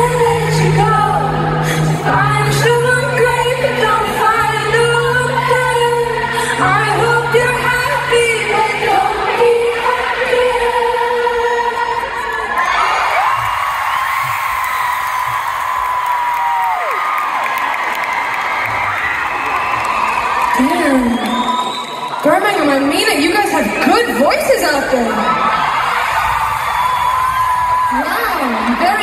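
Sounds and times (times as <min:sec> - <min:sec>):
woman singing pop song: 0:00.0 - 0:12.6
crowd cheering and whooping: 0:08.5 - 0:29.0.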